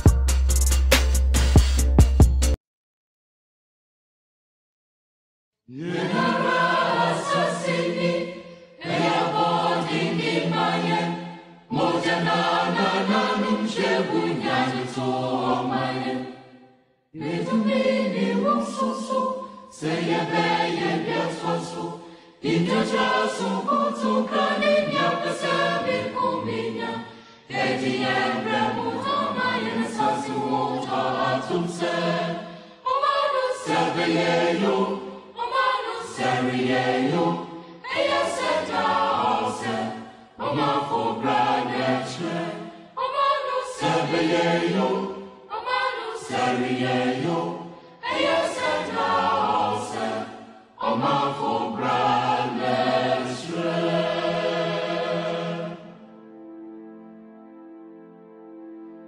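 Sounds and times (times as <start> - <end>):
choir singing: 5.7 - 59.0.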